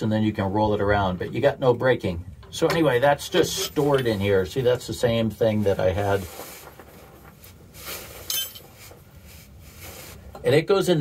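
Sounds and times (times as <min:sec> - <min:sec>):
metal tools handled: 0:03.4 - 0:04.3, 0:08.2 - 0:08.8
ringing metal clink: 0:08.3 - 0:08.8.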